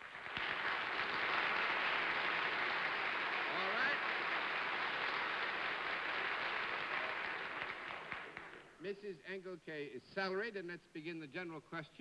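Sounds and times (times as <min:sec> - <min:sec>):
audience applauding: 0:00.0 - 0:08.8.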